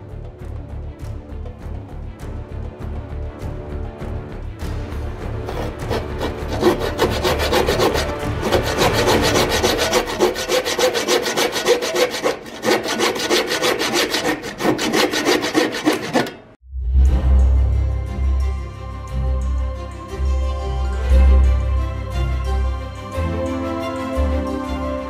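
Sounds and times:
hand saw cutting wood: 0:05.2 - 0:16.6.

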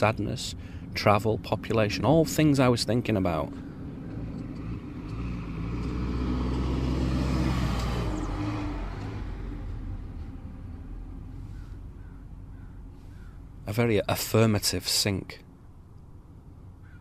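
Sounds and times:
vehicle engine rumble passing: 0:00.0 - 0:17.0.

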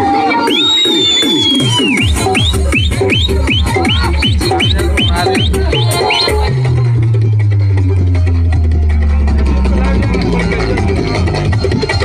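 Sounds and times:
loud dance music: 0:00.0 - 0:12.0
long held low bass notes: 0:02.3 - 0:12.0.

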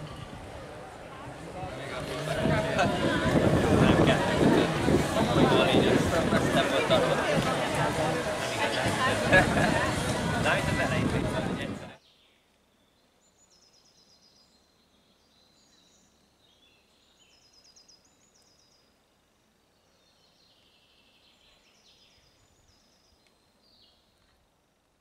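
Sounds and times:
outdoor background noise: 0:00.0 - 0:25.0
songbird singing: 0:12.0 - 0:24.4.

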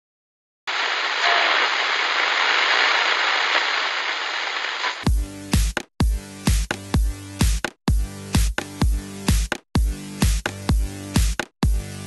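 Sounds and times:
television static hiss: 0:00.7 - 0:05.0.

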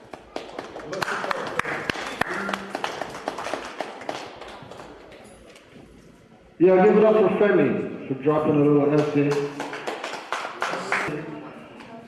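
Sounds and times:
audience applauding: 0:00.0 - 0:05.1, 0:09.0 - 0:11.1.

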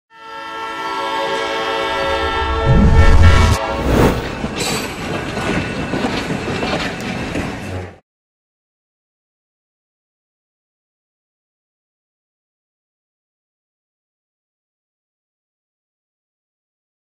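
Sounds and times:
train whistle: 0:00.1 - 0:04.4
rush of noise: 0:02.0 - 0:04.6
heavy low rumble: 0:02.2 - 0:04.6
train rattling clatter: 0:03.6 - 0:08.0.

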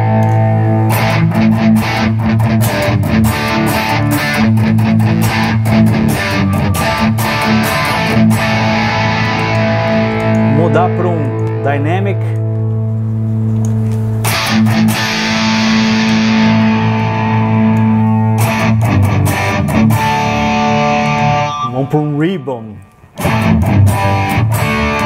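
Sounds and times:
distorted electric guitar: 0:00.0 - 0:25.0.

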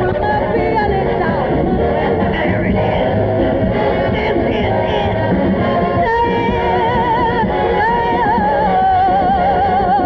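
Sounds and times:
woman singing jazz-pop: 0:00.0 - 0:02.9, 0:04.1 - 0:10.0
live band playing: 0:00.0 - 0:10.0.

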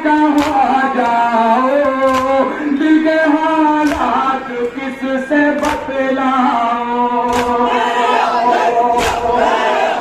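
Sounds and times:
men chanting in chorus: 0:00.0 - 0:10.0.

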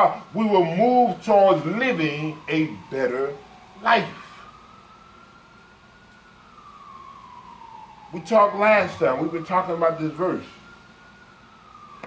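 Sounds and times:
faint siren wailing: 0:00.0 - 0:12.0.

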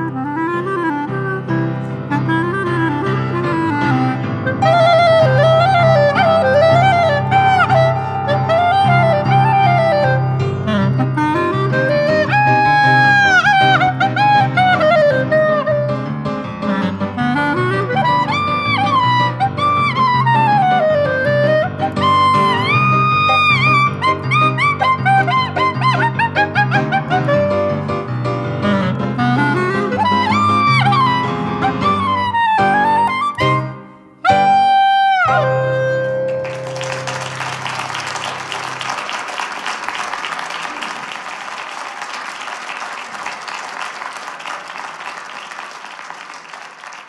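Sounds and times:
clarinet melody: 0:00.0 - 0:39.4
piano accompaniment: 0:00.0 - 0:41.1.

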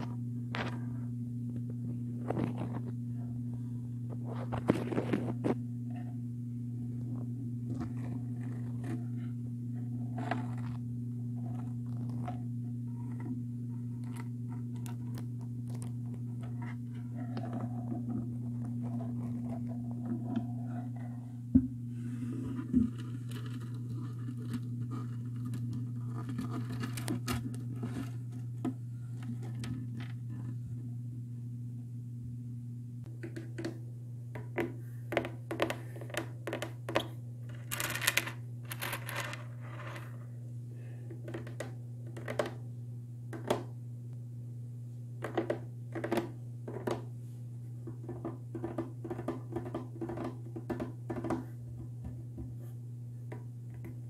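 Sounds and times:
low electrical hum: 0:00.0 - 0:54.0
microphone scratching against plastic: 0:04.2 - 0:05.6.

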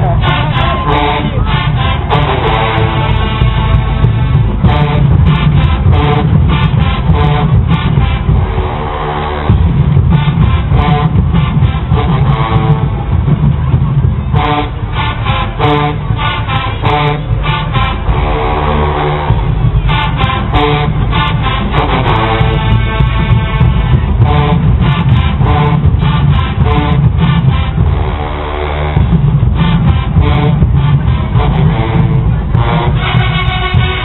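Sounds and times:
marching band playing: 0:00.0 - 0:34.0.

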